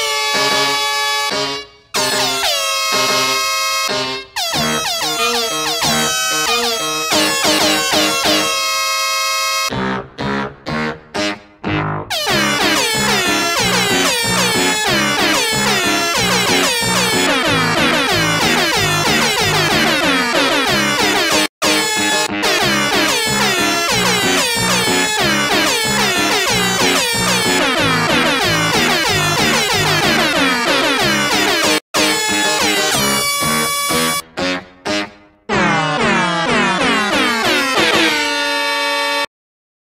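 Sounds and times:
song played with horn honks: 0.0 - 39.3.

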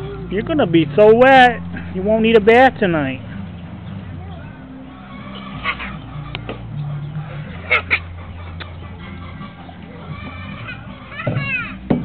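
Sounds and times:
low steady hum: 0.0 - 11.1.

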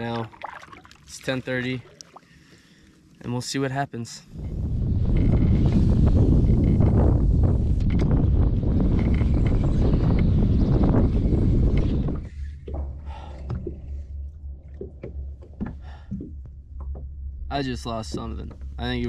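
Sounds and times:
wind buffeting microphone: 4.3 - 19.0.

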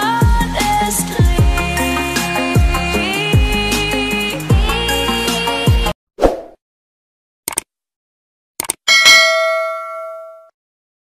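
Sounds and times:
bright notification ding: 8.9 - 10.5.

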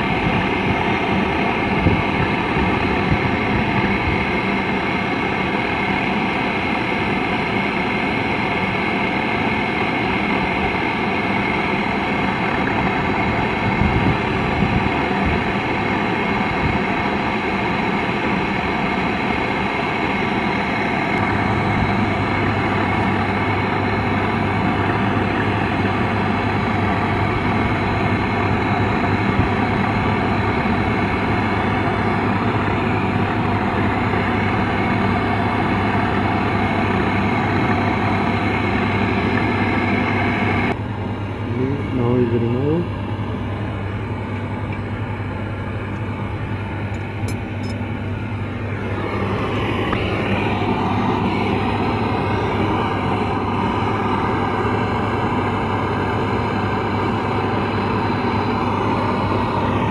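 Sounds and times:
machine hum: 0.0 - 59.9.

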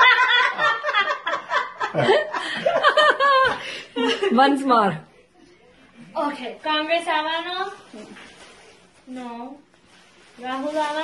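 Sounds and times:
woman laughing: 0.0 - 4.5.

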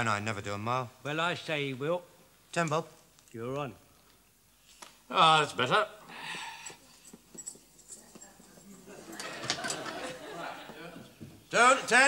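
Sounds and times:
studio audience laughter: 8.9 - 10.7.

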